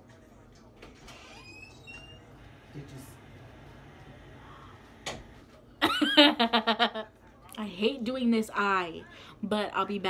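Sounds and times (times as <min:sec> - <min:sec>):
door hinge squeaking: 0:01.0 - 0:02.4.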